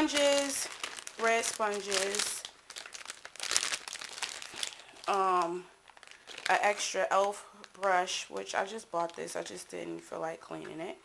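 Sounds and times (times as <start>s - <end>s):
plastic bag crinkling: 0.0s - 9.6s.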